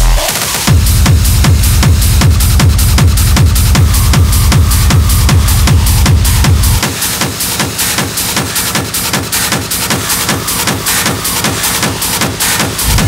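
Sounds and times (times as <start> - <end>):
hard techno music: 0.0 - 13.0
heavy kick drum: 0.0 - 13.0
hi-hats: 0.0 - 13.0.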